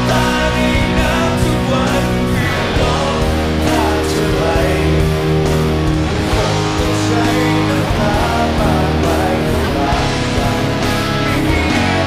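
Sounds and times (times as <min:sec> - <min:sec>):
electric guitar chords strummed: 0:00.0 - 0:12.0.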